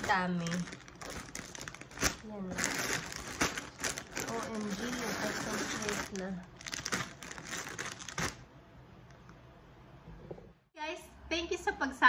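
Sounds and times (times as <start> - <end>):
plastic bags crinkling: 0.0 - 8.5.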